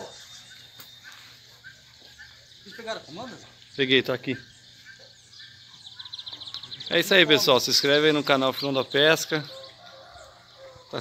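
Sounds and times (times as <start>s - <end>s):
thin steady high tone: 0.0s - 3.5s
faint bird chirps: 0.0s - 11.0s.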